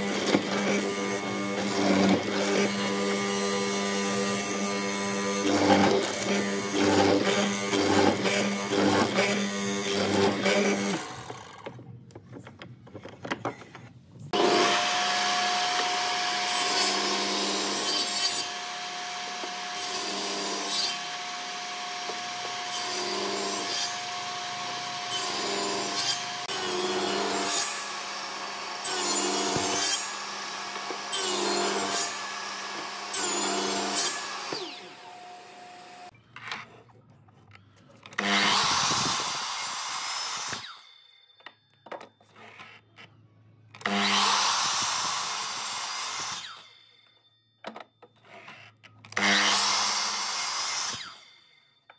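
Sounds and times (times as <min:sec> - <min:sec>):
table saw cutting wood: 0:00.0 - 0:11.7, 0:14.3 - 0:36.2, 0:38.1 - 0:40.9, 0:43.8 - 0:46.8, 0:48.2 - 0:51.4.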